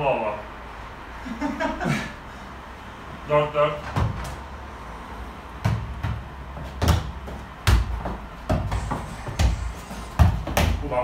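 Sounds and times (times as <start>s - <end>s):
ball thudding: 5.6s - 10.8s.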